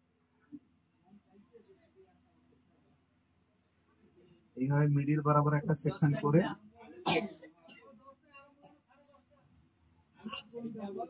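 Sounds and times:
person clearing throat: 7.0 - 7.8
faint voices: 10.2 - 11.0.

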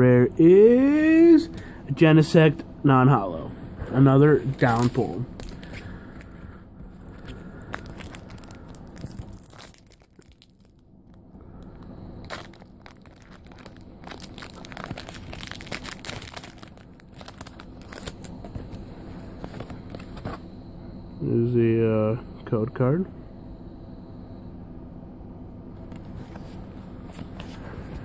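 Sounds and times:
foil wrapper crinkling and tearing: 4.4 - 6.3, 7.2 - 10.8, 11.7 - 18.8.

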